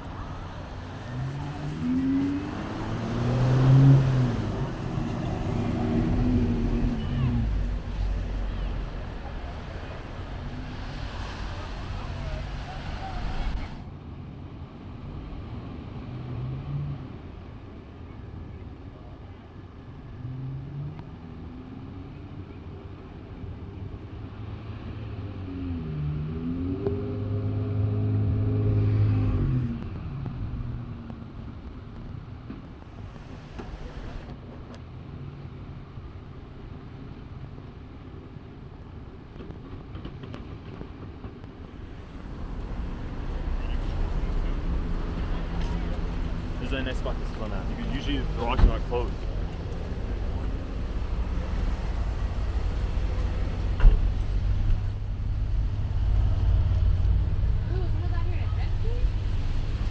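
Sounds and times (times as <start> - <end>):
vehicle engine driving close by: 0.0 - 13.8, 32.9 - 34.4, 41.7 - 59.9
cars passing: 0.0 - 13.9, 23.8 - 31.4, 32.8 - 34.4, 41.6 - 59.9.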